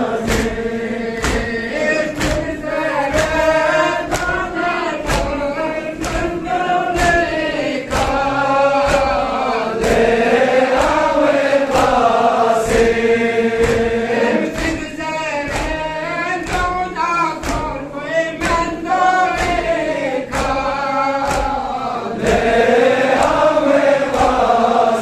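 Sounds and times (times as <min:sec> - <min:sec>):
crowd of men chanting: 0:00.0 - 0:25.0.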